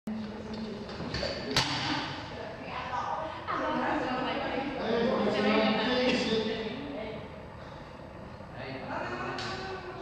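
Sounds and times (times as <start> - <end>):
weightlifting gym background noise: 0.1 - 10.0.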